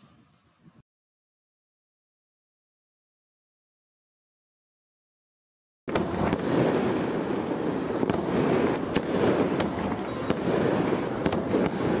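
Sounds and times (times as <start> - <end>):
fireworks crackling: 5.9 - 12.0
sharp firework cracks: 5.9 - 12.0.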